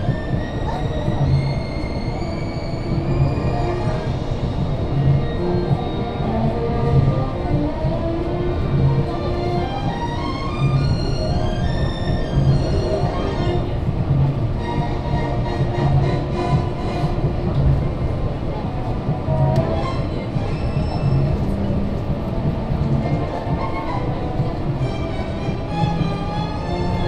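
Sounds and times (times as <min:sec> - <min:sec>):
monorail running on track: 0:00.0 - 0:27.0
music playing: 0:00.0 - 0:27.0.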